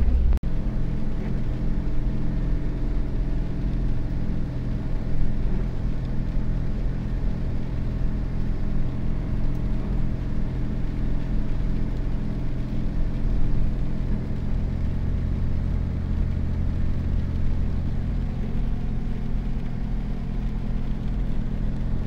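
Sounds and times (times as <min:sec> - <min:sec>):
car engine drone: 0:00.0 - 0:22.0
road noise inside car: 0:00.0 - 0:22.0.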